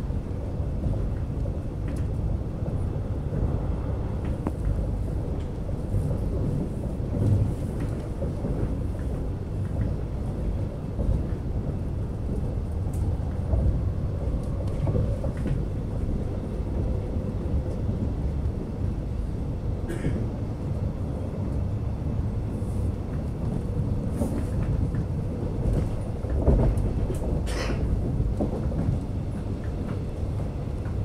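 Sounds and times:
train wheels rumbling on track: 0:00.0 - 0:31.0.

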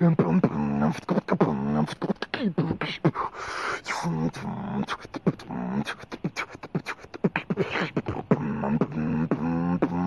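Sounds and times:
beatboxing: 0:00.0 - 0:10.0
hummed vocal tones: 0:00.0 - 0:10.0.

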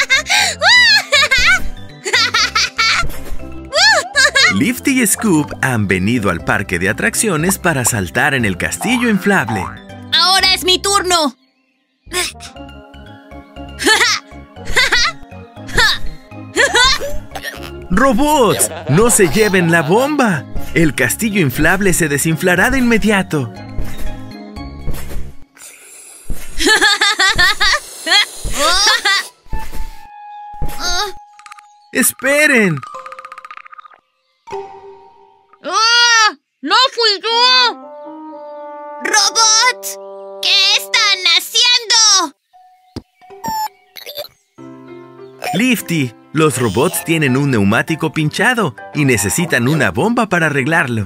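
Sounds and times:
high-pitched cartoon giggling: 0:00.0 - 0:03.0, 0:03.8 - 0:04.6, 0:16.6 - 0:17.8, 0:18.4 - 0:20.1, 0:26.6 - 0:29.3, 0:43.5 - 0:44.3
background music: 0:00.0 - 0:26.0, 0:28.6 - 0:51.0.

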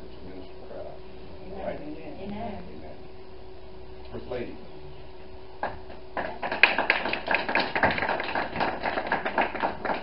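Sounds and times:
congregation clapping: 0:05.6 - 0:10.0.

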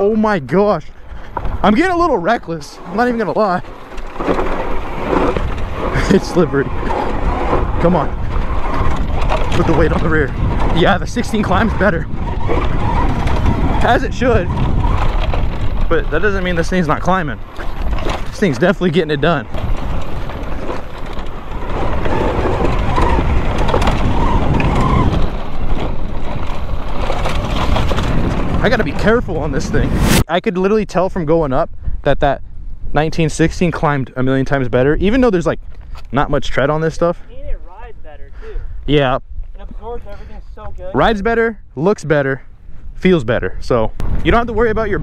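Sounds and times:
wind buffeting microphone: 0:00.0 - 0:45.0
tyres scrabbling over loose dirt: 0:00.5 - 0:29.9.

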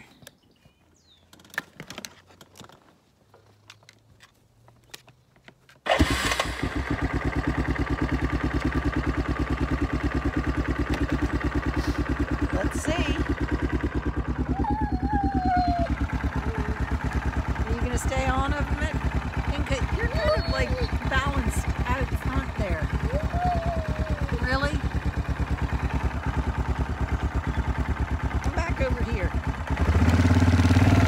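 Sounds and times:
quad bike engine starting and idling: 0:05.8 - 0:31.0.

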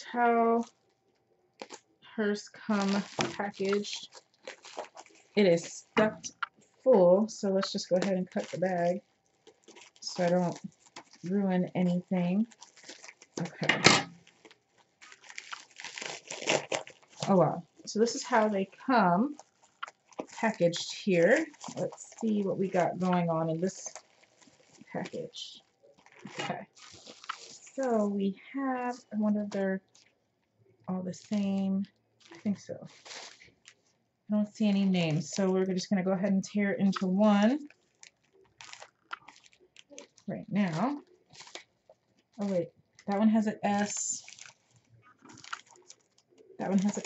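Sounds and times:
plastic mailer bag crinkling: 0:01.6 - 0:01.8, 0:02.5 - 0:30.1, 0:31.1 - 0:34.0, 0:36.9 - 0:47.0.

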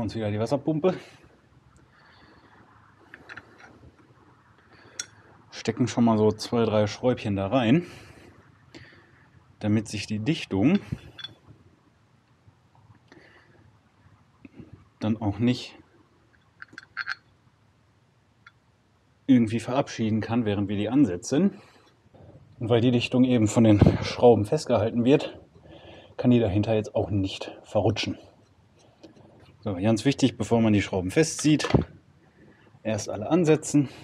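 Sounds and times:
background hiss: 0:00.0 - 0:34.0
small steel bolts clicking: 0:03.1 - 0:03.8, 0:16.4 - 0:17.3.

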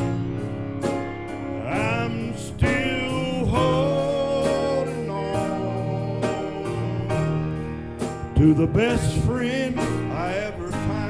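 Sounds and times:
electric guitar chords: 0:00.0 - 0:11.0
person singing: 0:01.6 - 0:11.0.

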